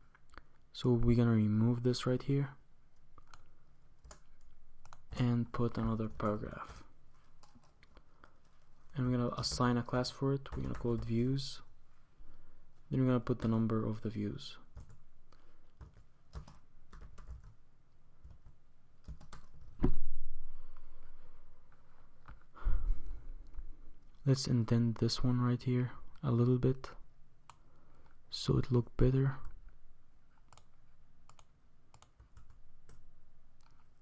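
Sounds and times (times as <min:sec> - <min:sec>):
computer keyboard typing: 0:03.2 - 0:05.2, 0:07.2 - 0:08.6, 0:10.4 - 0:11.1, 0:14.7 - 0:15.0, 0:15.8 - 0:17.6, 0:18.2 - 0:19.7, 0:31.3 - 0:33.0.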